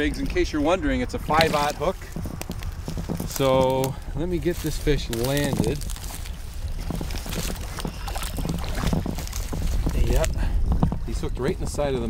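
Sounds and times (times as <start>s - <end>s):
wind rumble on microphone: 0.0s - 12.0s
fish splashing in water: 6.6s - 10.0s.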